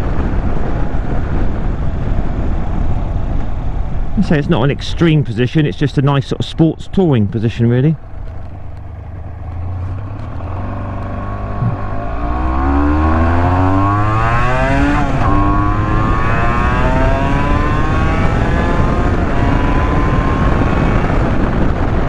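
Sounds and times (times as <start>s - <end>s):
motorcycle engine accelerating: 6.8s - 22.0s.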